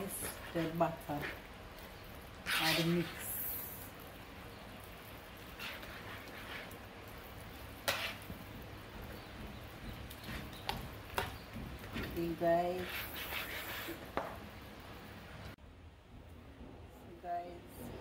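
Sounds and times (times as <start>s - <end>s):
whisk squishing wet mixture: 0.0s - 1.6s, 2.4s - 3.3s, 5.4s - 12.2s, 12.8s - 14.2s.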